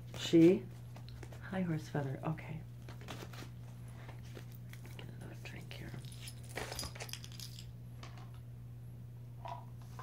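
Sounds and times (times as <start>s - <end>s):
playing cards clicking and rustling: 2.8s - 5.0s.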